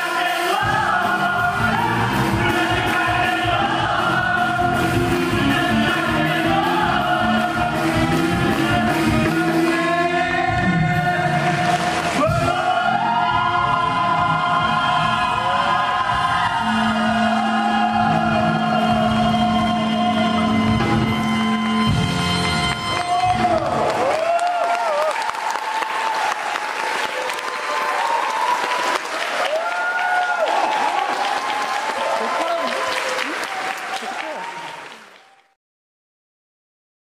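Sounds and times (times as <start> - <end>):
audience shouting and cheering: 0.0 - 35.6
audience applauding: 21.6 - 35.6.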